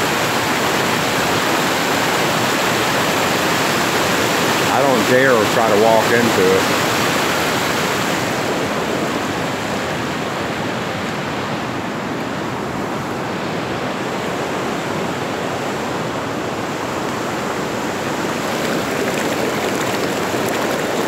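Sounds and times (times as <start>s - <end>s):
floodwater rushing: 0.0s - 11.1s, 13.5s - 21.0s.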